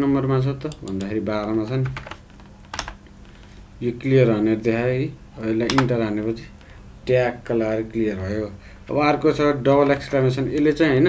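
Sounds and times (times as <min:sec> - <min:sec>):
keyboard key clicks: 0:05.6 - 0:05.9.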